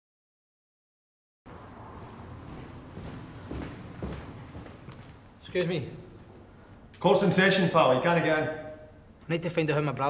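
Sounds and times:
room noise: 0:01.5 - 0:10.0
footsteps on hard floor: 0:02.0 - 0:05.2.

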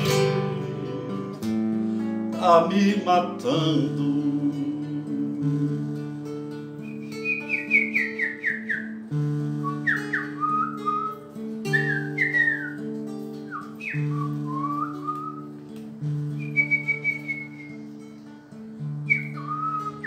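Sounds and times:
fingerpicked acoustic guitar: 0:00.0 - 0:20.0
man whistling a melody: 0:03.8 - 0:20.0.

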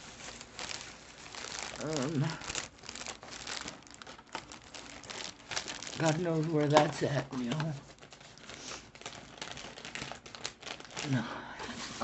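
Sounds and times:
cellophane crinkling: 0:00.0 - 0:12.0.

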